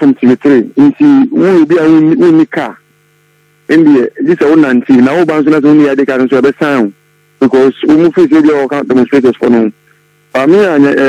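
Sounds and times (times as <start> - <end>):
man talking: 0.0 - 2.8, 3.7 - 11.0
faint steady hum: 0.0 - 11.0.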